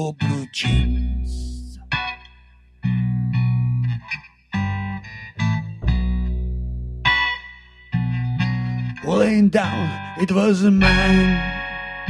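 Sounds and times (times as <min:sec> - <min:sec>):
person singing: 0:00.0 - 0:01.8, 0:09.0 - 0:11.7
low bass notes: 0:00.0 - 0:02.1, 0:04.6 - 0:07.3, 0:08.0 - 0:12.0
blues guitar picking: 0:00.1 - 0:12.0.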